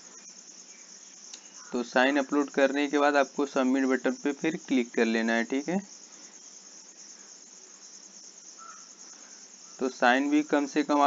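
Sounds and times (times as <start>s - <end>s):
faint high-pitched hiss: 0.0s - 11.0s.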